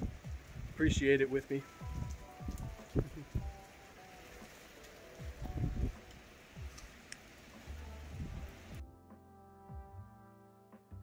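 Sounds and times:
steady rain hiss: 0.0 - 8.8
music: 0.0 - 11.0
low thumps: 8.1 - 8.8.

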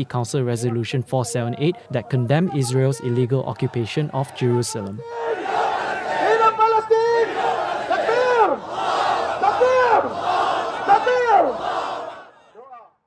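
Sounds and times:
man speaking through a microphone: 0.0 - 5.0
loud shouted calls: 0.6 - 13.0
crowd chanting slogans: 1.6 - 13.0.

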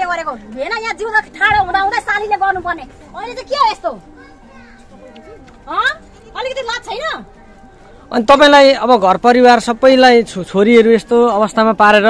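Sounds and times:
crowd voices with children: 0.0 - 12.0.

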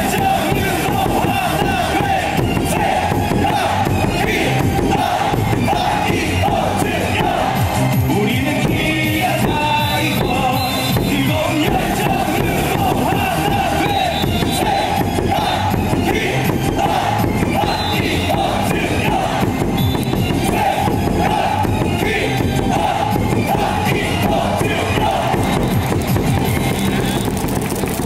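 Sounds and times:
crowd chanting: 0.0 - 26.4
cheer song over stadium speakers: 0.0 - 28.0.

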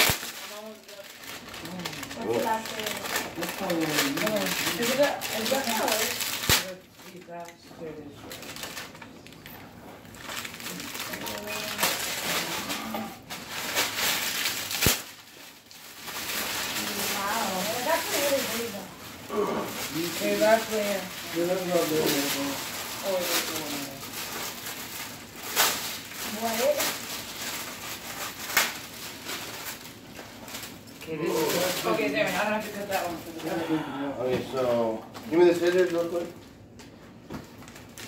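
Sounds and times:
plastic bag crackle: 0.0 - 33.8, 34.5 - 38.0
plastic shrink wrap crinkling: 0.0 - 38.0.

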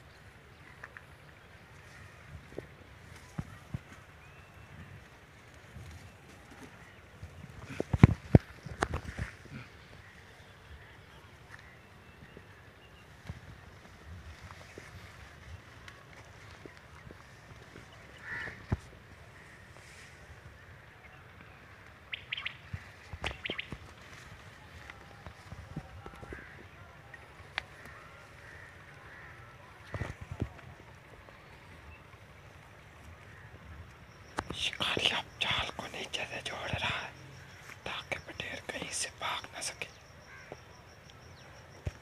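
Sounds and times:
birds calling: 0.0 - 42.0.

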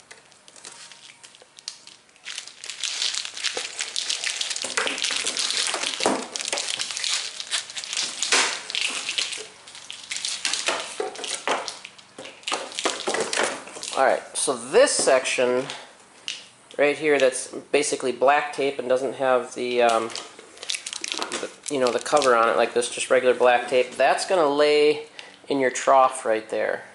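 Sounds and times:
plastic packaging crinkling: 0.0 - 14.2, 19.9 - 23.1.

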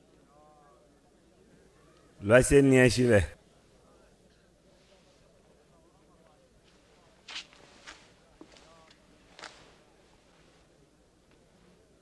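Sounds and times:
faint murmured voice: 3.4 - 12.0
rustles and scuffs of movement: 6.6 - 11.9.

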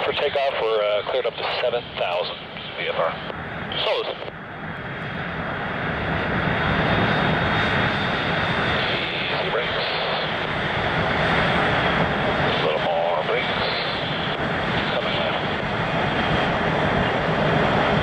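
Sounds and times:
jet engines rushing: 0.0 - 18.0.

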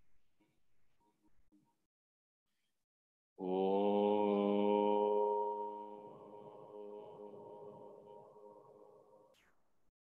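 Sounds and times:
person chanting a held note: 3.4 - 9.2.

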